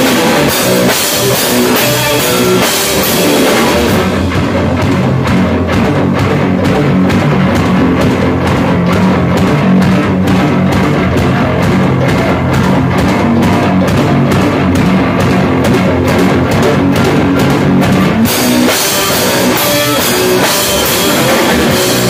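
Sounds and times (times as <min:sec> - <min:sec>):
drum kit beat: 0:00.0 - 0:22.0
electric guitar: 0:00.0 - 0:22.0.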